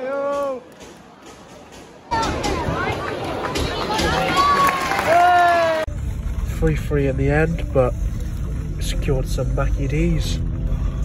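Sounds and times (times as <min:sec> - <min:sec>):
stadium crowd shouting and chanting: 0:00.0 - 0:05.9.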